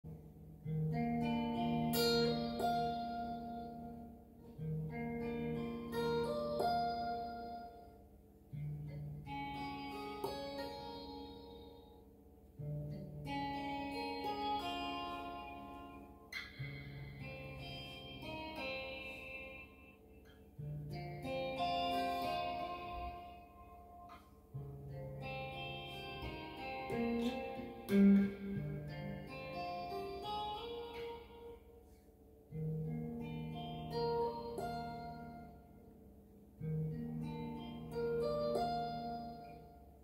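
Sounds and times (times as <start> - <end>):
electric guitar picked chords: 0.1 - 40.0.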